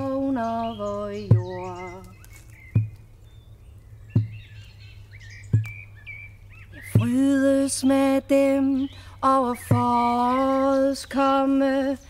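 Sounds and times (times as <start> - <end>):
small birds chirping: 0.0 - 12.0
deep slow thump: 2.7 - 3.0, 4.1 - 4.6, 5.4 - 5.8.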